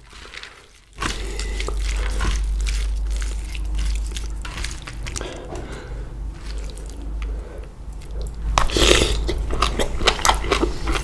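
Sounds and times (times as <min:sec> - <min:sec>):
wet squelching of salad: 0:00.0 - 0:07.1
low rumble: 0:01.0 - 0:09.6.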